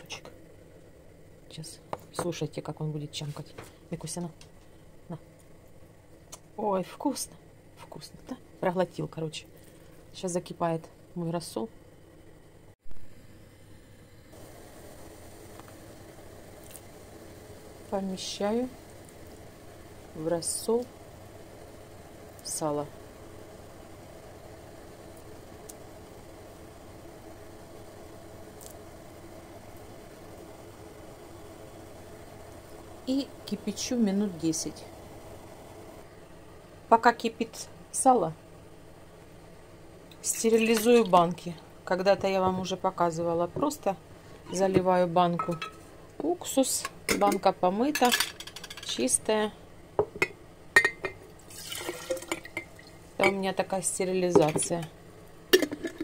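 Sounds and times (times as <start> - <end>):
glass jars clinking: 45.4 - 45.8, 50.0 - 53.4
liquid pouring into jar: 51.3 - 53.0.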